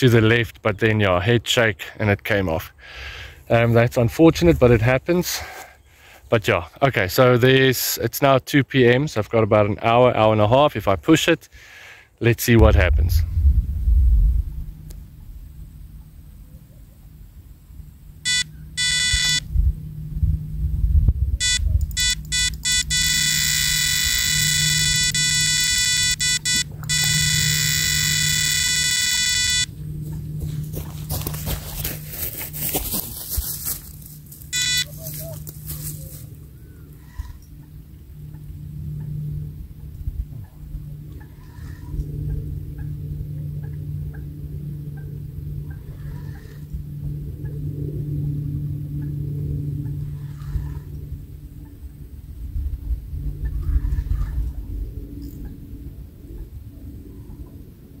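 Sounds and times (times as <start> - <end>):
electronic bite alarm bleeping: 18.2 - 19.5, 21.4 - 29.8, 34.5 - 35.0
rustling and handling noise: 30.0 - 36.4.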